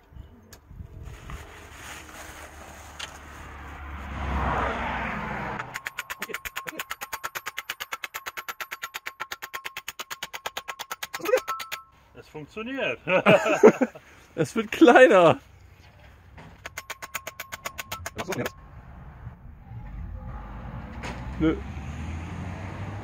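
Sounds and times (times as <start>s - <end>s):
hammer striking metal pole: 5.6s - 12.0s, 16.6s - 18.6s.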